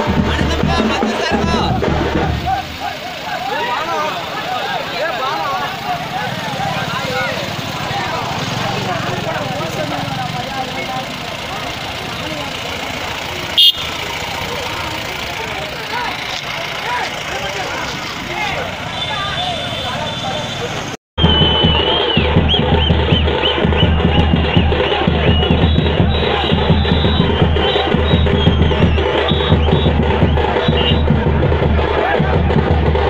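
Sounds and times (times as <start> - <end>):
people talking and calling out: 0.0 - 33.0
truck engine running: 0.0 - 33.0.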